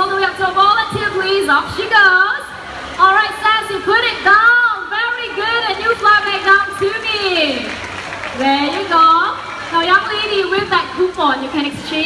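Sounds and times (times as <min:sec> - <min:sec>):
woman speaking: 0:03.0 - 0:07.7, 0:08.4 - 0:12.0.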